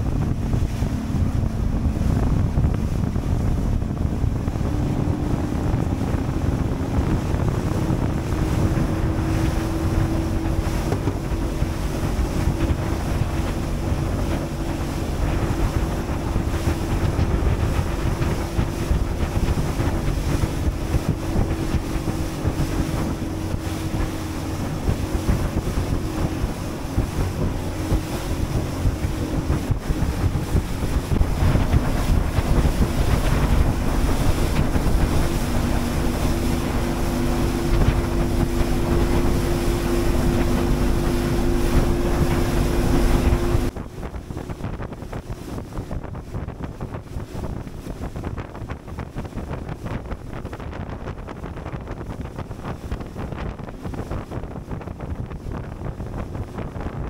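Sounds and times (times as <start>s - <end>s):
boat engine humming: 0.0s - 57.0s
sea water washing: 0.0s - 57.0s
wind buffeting microphone: 0.0s - 57.0s.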